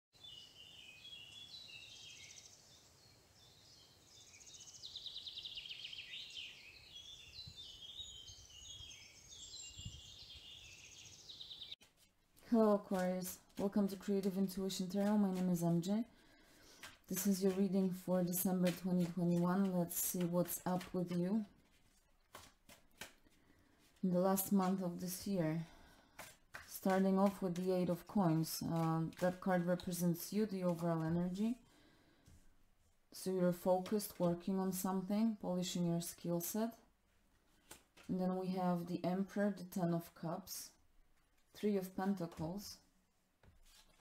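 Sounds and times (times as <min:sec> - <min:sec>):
birds singing: 0:00.2 - 0:11.8
cards being shuffled: 0:11.8 - 0:15.7, 0:16.4 - 0:24.0, 0:26.0 - 0:31.2, 0:37.5 - 0:38.2, 0:43.4 - 0:44.0.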